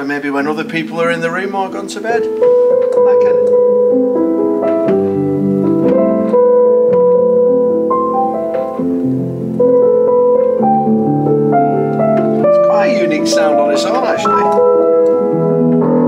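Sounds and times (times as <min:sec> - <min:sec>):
muted upright piano chords: 0:00.0 - 0:16.0.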